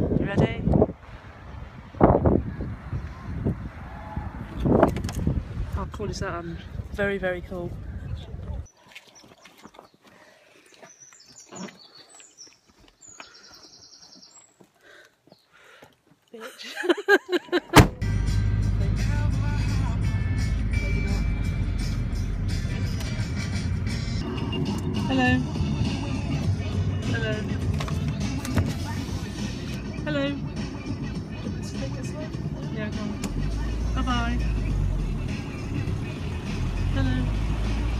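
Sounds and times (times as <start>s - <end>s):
songbird singing: 7.6s - 15.7s
car rumble: 17.7s - 37.9s.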